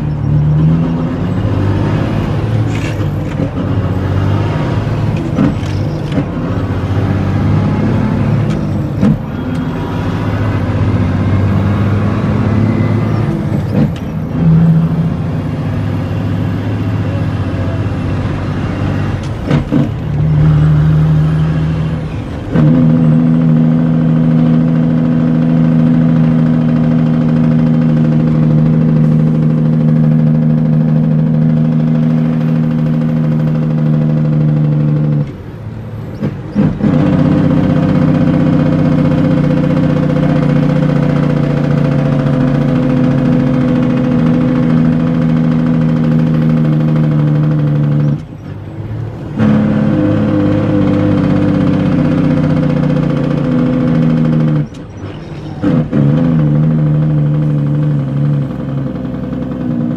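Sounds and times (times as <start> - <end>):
diesel truck engine running: 0.0 - 59.9.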